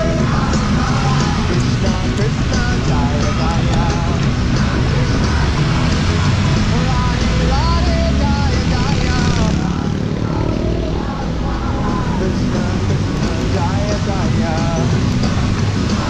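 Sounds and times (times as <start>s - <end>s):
city traffic rumble: 0.0s - 16.0s
wavering sung melody: 0.0s - 16.0s.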